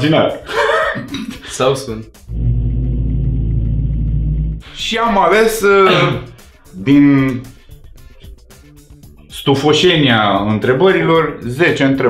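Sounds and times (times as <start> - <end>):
deep drone with gong-like ring: 2.3 - 4.6.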